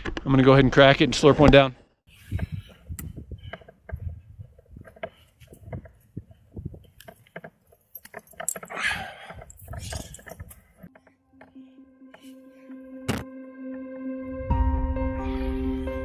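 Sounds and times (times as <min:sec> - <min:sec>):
metal gear jingling: 0:07.6 - 0:10.8.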